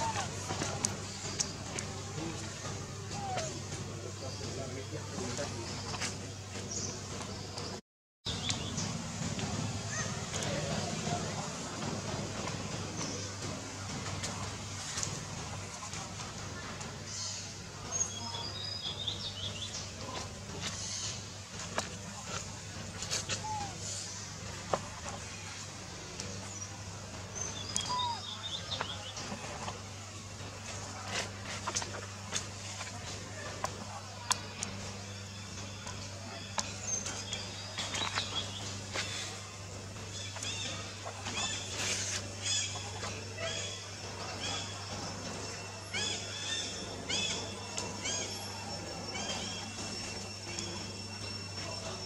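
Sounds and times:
birds chirping: 0.0s - 52.0s
steady low hum: 0.0s - 52.0s.

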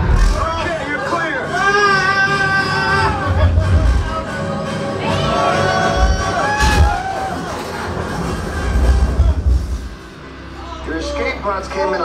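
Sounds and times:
theme park ride music: 0.0s - 12.0s
riders cheering and whooping: 5.0s - 8.1s.

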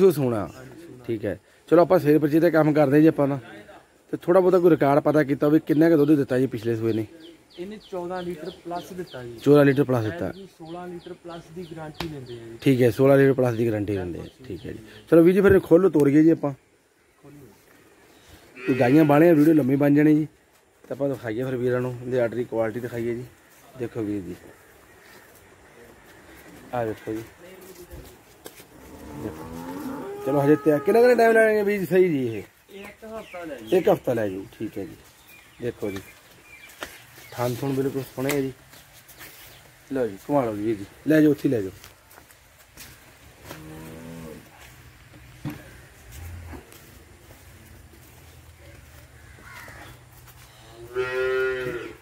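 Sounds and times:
cow mooing: 28.8s - 31.0s, 50.8s - 52.0s.

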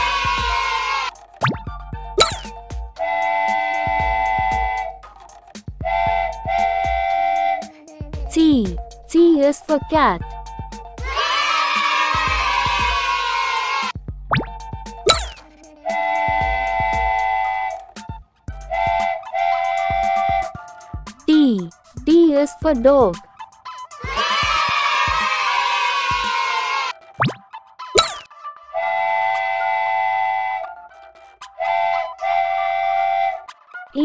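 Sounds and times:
children's music with steady beat: 0.0s - 34.0s
cartoon whoosh with falling pitch: 2.2s - 2.5s, 15.1s - 15.4s, 28.0s - 28.3s
cartoon steam-train whistle: 2.9s - 5.1s, 5.8s - 7.8s, 15.1s - 20.8s, 28.0s - 33.9s.

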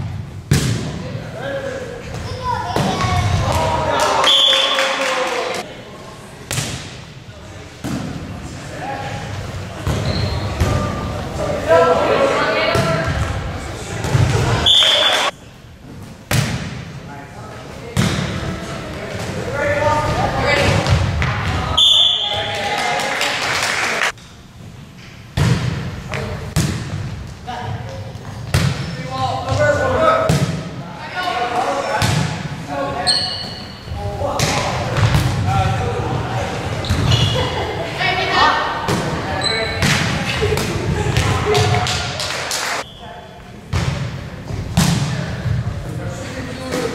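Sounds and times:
sharp volleyball hit: 0.5s - 1.0s, 6.5s - 7.0s, 16.3s - 16.8s, 25.4s - 25.8s, 26.5s - 27.0s, 44.7s - 45.2s
players' voices: 0.6s - 15.4s, 16.4s - 24.2s, 25.6s - 46.9s
referee's whistle: 4.2s - 4.8s, 14.6s - 15.3s, 21.8s - 22.5s.

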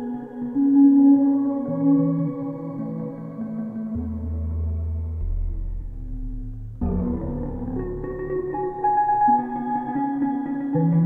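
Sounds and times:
synthesizer sustained chords: 0.0s - 11.0s
deep synth bass note: 4.3s - 8.8s.

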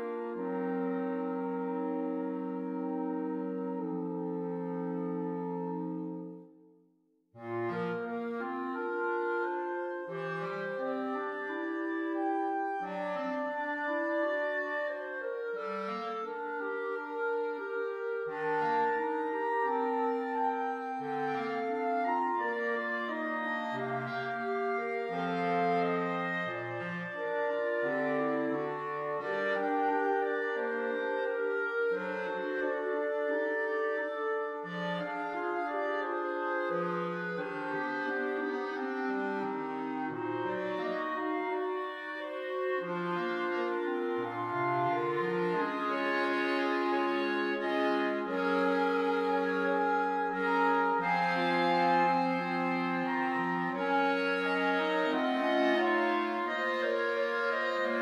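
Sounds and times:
clarinet choir playing chords: 0.0s - 6.6s, 7.4s - 58.0s.

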